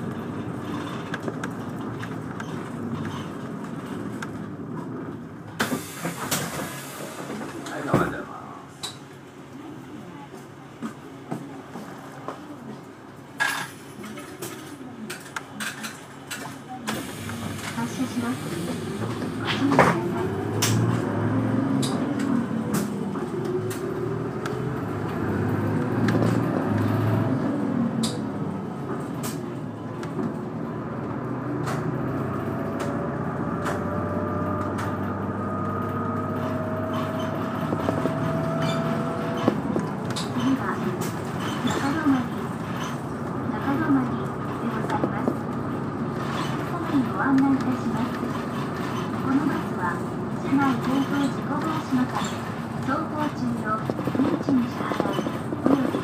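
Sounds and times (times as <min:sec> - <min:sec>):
bus diesel engine accelerating: 0:00.0 - 0:56.0
rattles and clicks inside bus: 0:00.0 - 0:56.0
road noise: 0:00.0 - 0:56.0.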